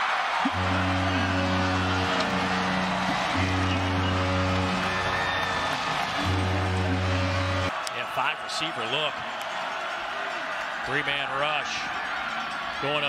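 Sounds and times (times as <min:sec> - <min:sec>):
crowd noise: 0:00.0 - 0:13.0
stadium music with held chords: 0:00.0 - 0:13.0
deep bass note: 0:00.5 - 0:05.5, 0:06.1 - 0:07.7.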